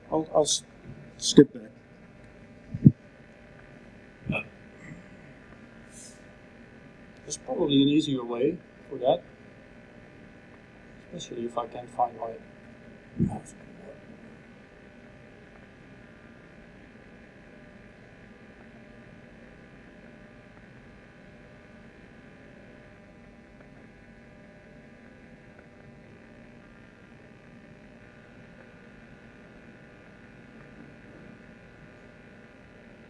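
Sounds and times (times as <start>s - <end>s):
electrical hum and buzz: 0.0s - 33.0s.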